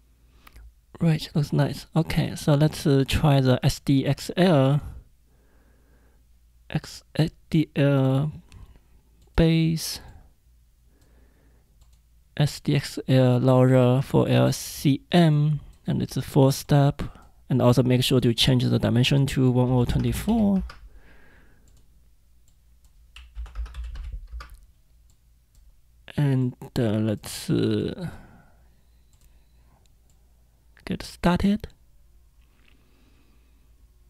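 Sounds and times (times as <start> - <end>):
keyboard typing: 19.6 - 20.8, 21.6 - 25.7.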